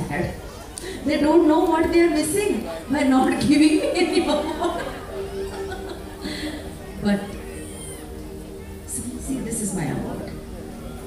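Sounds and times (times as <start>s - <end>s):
held keyboard chord: 0.0s - 11.0s.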